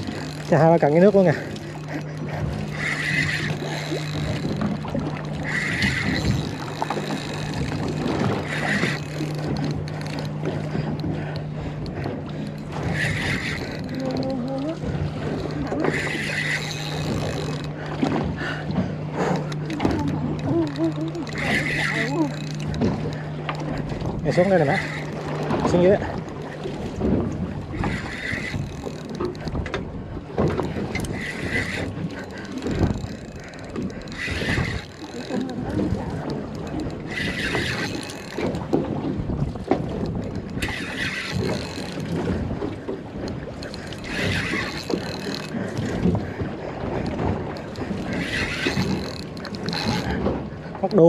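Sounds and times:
spinning reel winding: 0:02.7 - 0:10.3, 0:12.8 - 0:14.8, 0:15.4 - 0:17.7, 0:19.4 - 0:22.8, 0:24.5 - 0:25.2, 0:27.7 - 0:29.5, 0:30.9 - 0:38.6, 0:40.3 - 0:42.2, 0:43.6 - 0:45.9, 0:47.6 - 0:50.2
wind rumble on microphone: 0:25.4 - 0:50.8.

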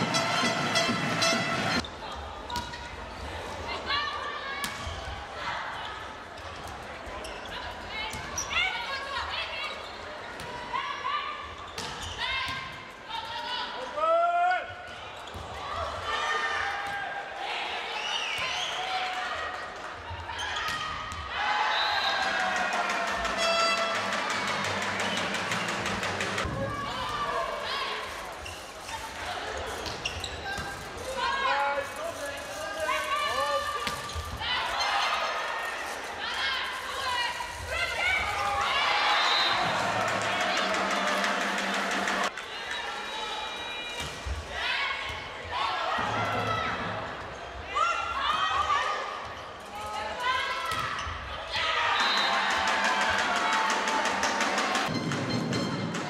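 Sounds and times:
crowd cheering: 0:00.0 - 0:02.3, 0:21.2 - 0:28.0, 0:37.6 - 0:43.9, 0:51.5 - 0:56.0
players and crowd voices: 0:00.0 - 0:56.0.

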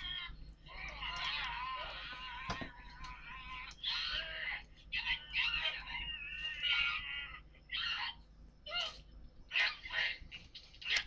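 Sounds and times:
high-pitched wailing cry: 0:00.0 - 0:11.0.

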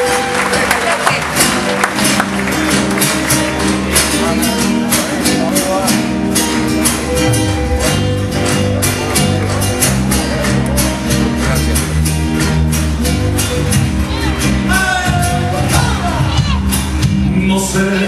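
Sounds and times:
acoustic guitar: 0:00.0 - 0:18.0
electric bass: 0:00.0 - 0:18.0.

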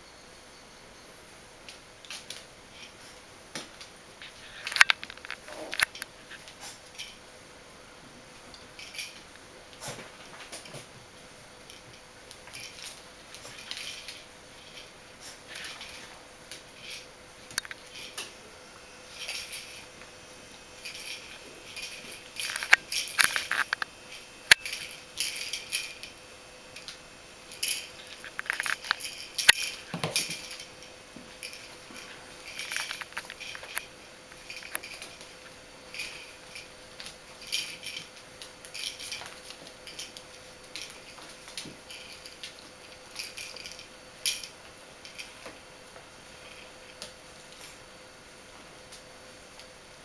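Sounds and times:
puppies scuffling with toys: 0:01.7 - 0:07.2, 0:08.4 - 0:18.4, 0:19.0 - 0:26.2, 0:26.8 - 0:47.8.

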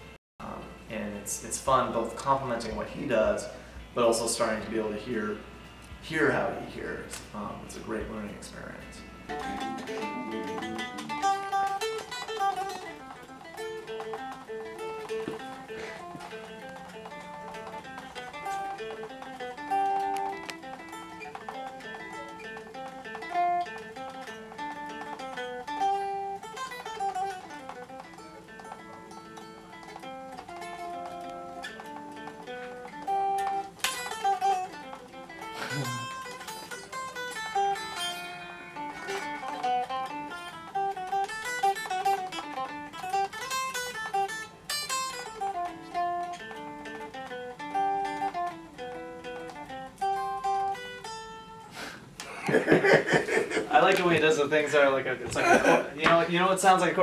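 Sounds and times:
electric guitar playing: 0:00.0 - 0:57.0.

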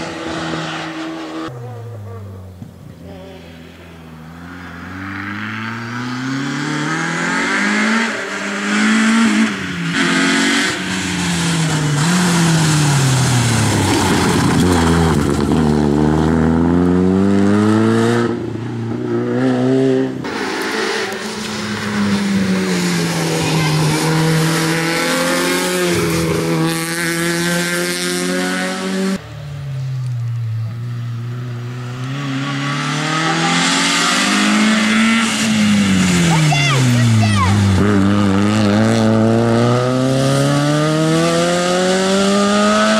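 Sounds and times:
rally car engine revving: 0:00.0 - 0:29.3, 0:30.6 - 0:42.9.

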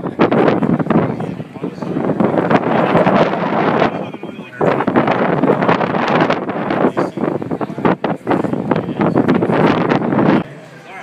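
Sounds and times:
crowd talking: 0:00.0 - 0:11.0
wind buffeting microphone: 0:00.0 - 0:11.0.

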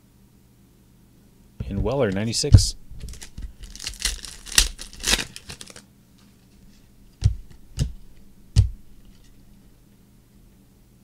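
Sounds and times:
foil wrapper tearing and crinkling: 0:03.0 - 0:05.9.

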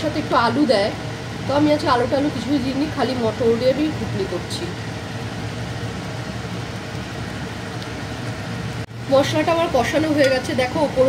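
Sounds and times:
gravy cooking on stove: 0:00.0 - 0:11.0.

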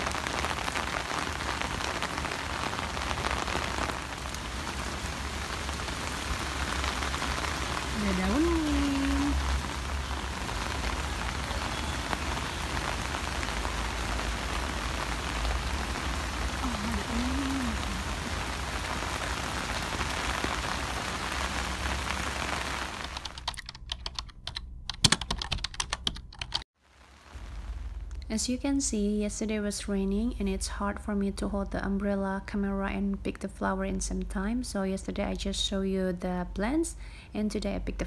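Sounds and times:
rain falling: 0:00.0 - 0:36.7
keyboard typing clicks: 0:23.2 - 0:26.6.

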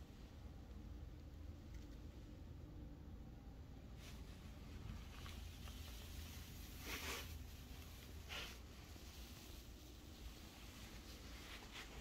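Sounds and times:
low steady hum: 0:00.0 - 0:12.0
soft rustles: 0:03.8 - 0:12.0.

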